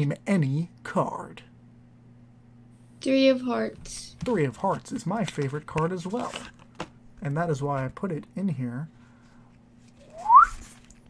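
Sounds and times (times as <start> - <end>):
person whistling rising note: 10.0 - 10.7.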